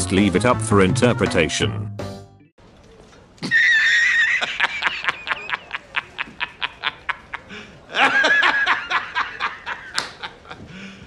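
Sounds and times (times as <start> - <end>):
man laughing loudly: 3.4 - 11.0.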